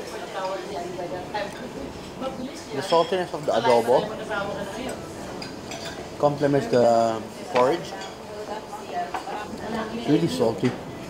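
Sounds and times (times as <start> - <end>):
murmur of voices: 0.0 - 11.0
cutlery clinking against dishes: 2.8 - 3.8, 4.9 - 6.0, 7.5 - 8.2.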